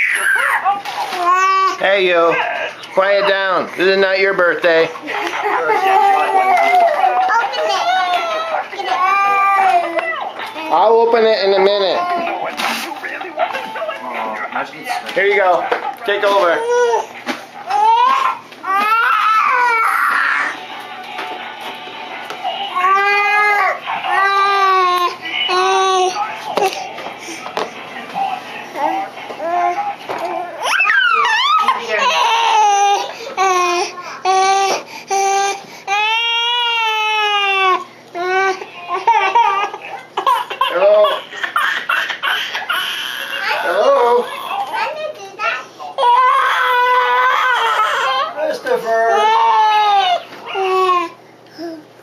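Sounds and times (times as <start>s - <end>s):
child wailing: 0.0s - 1.8s, 5.8s - 10.1s, 17.7s - 20.6s, 22.7s - 26.1s, 28.8s - 39.8s, 42.7s - 48.4s, 49.1s - 51.8s
young child wailing: 17.7s - 20.6s, 30.6s - 33.0s, 46.0s - 48.4s.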